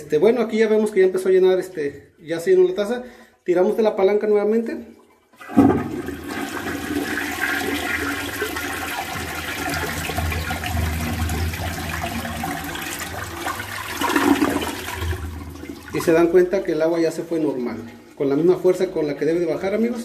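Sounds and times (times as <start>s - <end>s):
toilet flushing: 5.3s - 20.0s.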